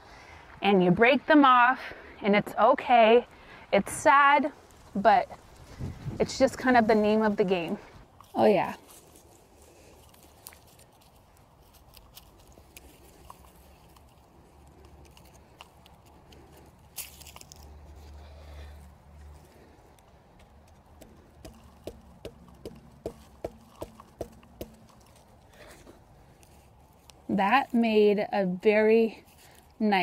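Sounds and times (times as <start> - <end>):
soil crumbling and scraping: 4.6 - 18.2.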